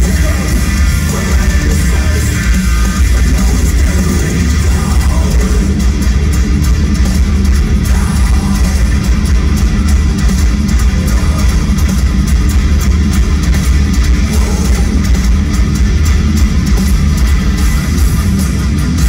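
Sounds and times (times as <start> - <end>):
heavy metal band playing live: 0.0 - 19.0.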